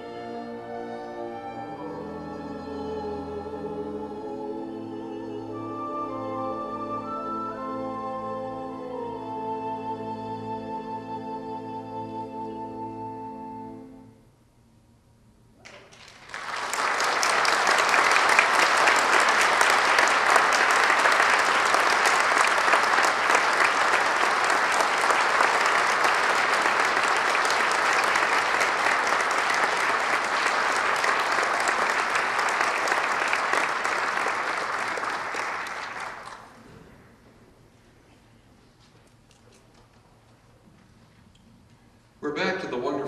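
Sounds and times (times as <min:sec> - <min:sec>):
audience applauding: 0:15.6 - 0:36.6.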